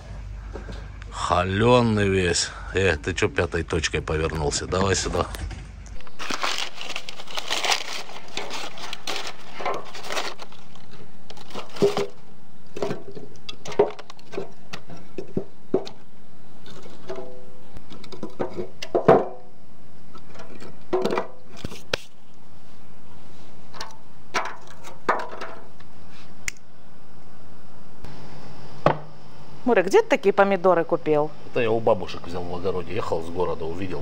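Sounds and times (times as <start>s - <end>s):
wooden knocks of firewood logs: 18.1s - 19.4s.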